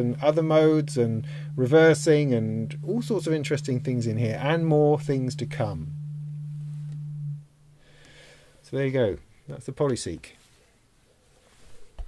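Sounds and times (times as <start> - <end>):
synthesizer low note: 0.0 - 7.6
faint background hiss: 0.0 - 12.0.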